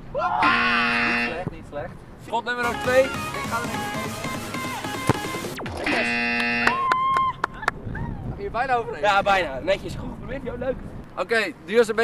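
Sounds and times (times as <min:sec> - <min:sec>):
background music: 0:02.6 - 0:06.6
buzzing chord: 0:02.7 - 0:06.7
football kick thud: 0:05.0 - 0:05.8.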